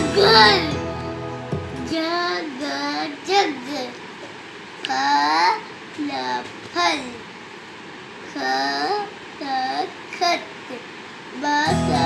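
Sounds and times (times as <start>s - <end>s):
child reading aloud sing-song: 0.0s - 0.8s, 1.8s - 4.1s, 4.8s - 7.3s, 8.2s - 12.0s.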